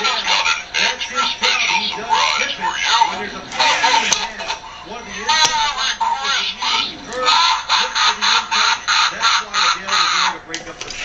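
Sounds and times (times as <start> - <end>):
voice from small speaker: 0.0 - 10.4.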